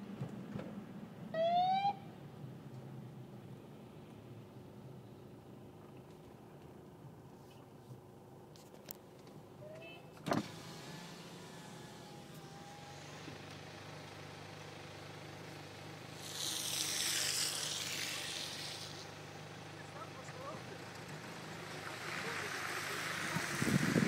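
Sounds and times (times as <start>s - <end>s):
car cabin drone: 9.5s - 24.0s
tyres hissing on wet road: 10.4s - 24.0s.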